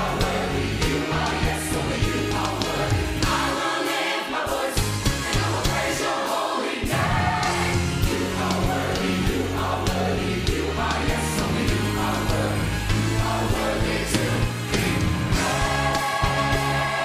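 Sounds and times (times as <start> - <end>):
gospel choir singing: 0.0 - 17.0.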